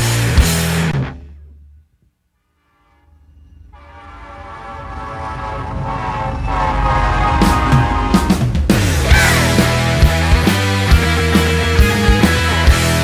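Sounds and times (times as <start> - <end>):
train horn: 2.4 - 8.7
drum hits: 7.4 - 13.0.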